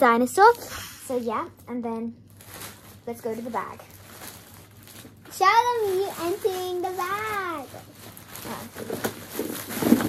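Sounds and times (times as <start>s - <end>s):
plastic bag rustling and crinkling: 0.0s - 10.0s.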